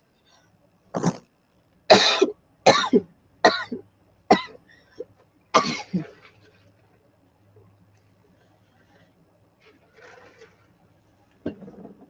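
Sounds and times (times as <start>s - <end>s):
person coughing: 1.9s - 6.2s.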